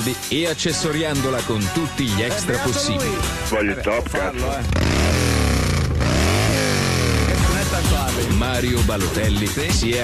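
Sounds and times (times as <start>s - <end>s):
motorcycle engine revving: 4.2s - 9.2s.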